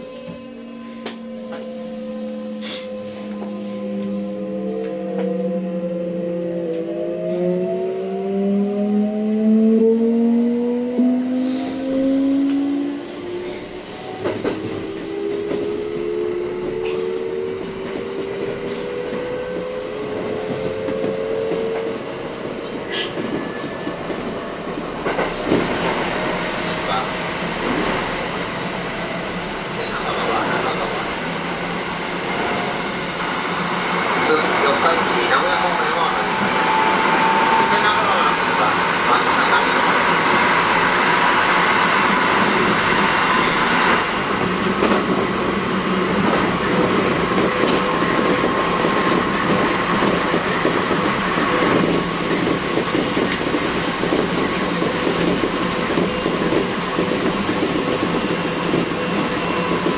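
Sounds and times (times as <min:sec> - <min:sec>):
wheels rumbling on rail: 0:00.0 - 0:59.9.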